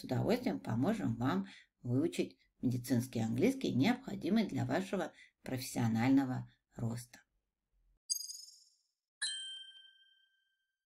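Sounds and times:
bell-like chime: 8.1 - 10.7.

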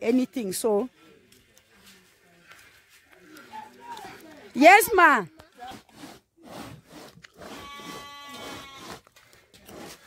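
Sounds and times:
sheep bleating: 7.5 - 9.0.

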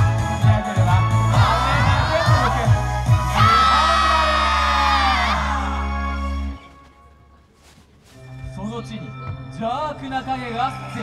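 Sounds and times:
dance music over loudspeakers: 0.0 - 6.3.

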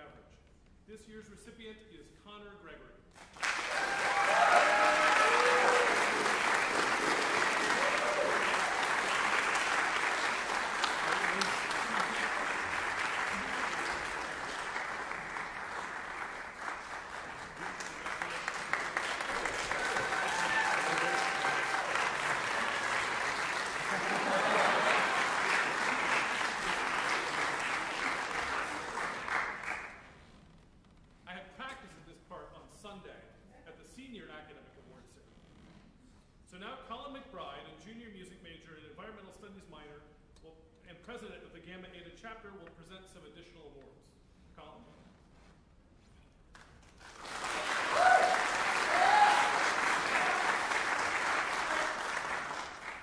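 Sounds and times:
audience applauding: 3.2 - 30.1, 46.6 - 53.0.

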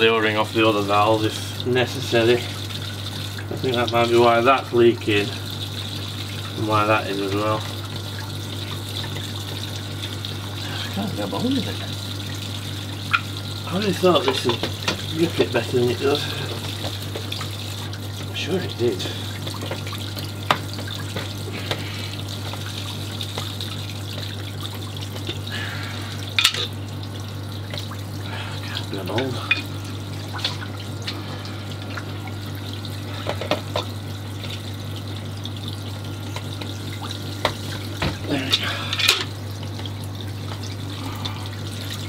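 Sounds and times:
steady low hum: 0.0 - 42.0
water running and trickling: 0.0 - 42.0.

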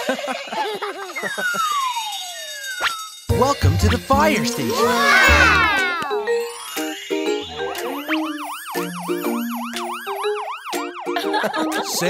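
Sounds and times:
falling whistle-like tone: 1.4 - 3.3, 7.8 - 11.0.

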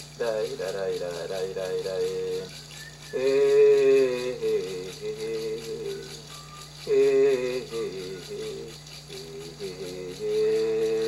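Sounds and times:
shaken rattle: 0.0 - 11.0
person singing wordless chant: 0.2 - 2.5, 3.1 - 11.0.

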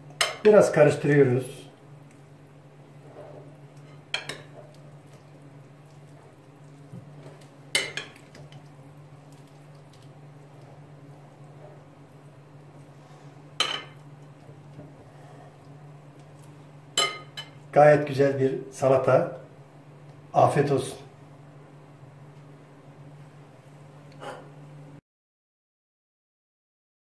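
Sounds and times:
steady low hum: 0.0 - 25.0
spoon clinking on ceramic bowl: 17.0 - 17.6.

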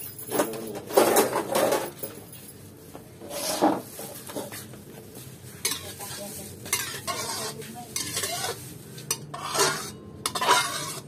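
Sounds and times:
metal spatula scraping wok: 3.2 - 4.3, 5.5 - 11.0.

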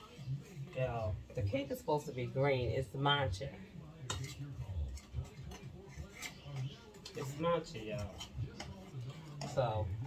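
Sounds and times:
knife scraping metal cake pan: 0.0 - 10.0.

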